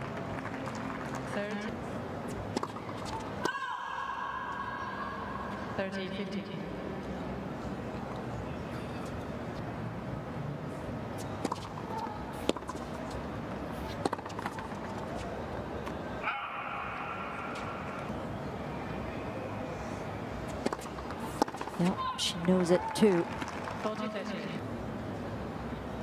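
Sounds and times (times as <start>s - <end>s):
stadium background noise: 0.0s - 26.0s
racket hitting tennis ball: 2.5s - 3.6s, 11.2s - 13.1s, 13.8s - 15.3s, 20.5s - 21.9s.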